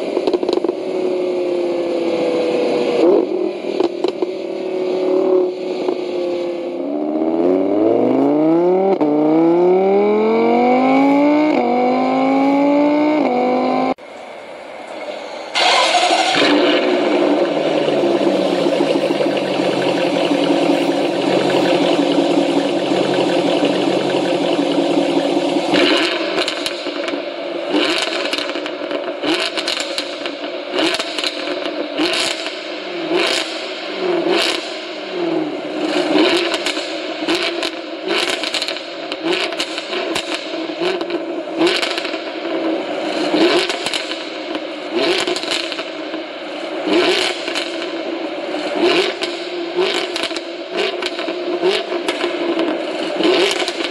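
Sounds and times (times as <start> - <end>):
exhaust crackles and pops: 0.1 - 0.8, 3.7 - 4.4, 15.6 - 33.6, 35.8 - 46.2, 48.8 - 53.9
car exhaust revving: 15.4 - 53.9.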